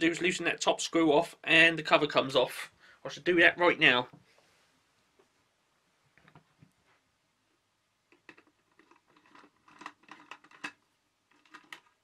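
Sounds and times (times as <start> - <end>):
plastic case clicks and scrapes: 8.2 - 12.0.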